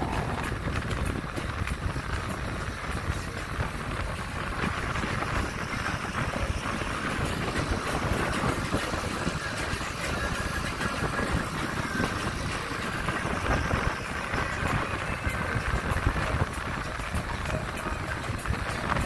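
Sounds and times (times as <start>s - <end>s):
boat rumble: 0.0s - 19.0s
water along boat hulls: 0.0s - 19.0s
wind on microphone: 0.0s - 19.0s.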